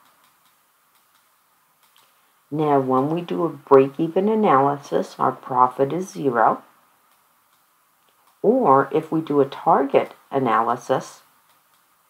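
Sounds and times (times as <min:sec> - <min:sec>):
stylus tapping on tablet screen: 0:00.0 - 0:02.2.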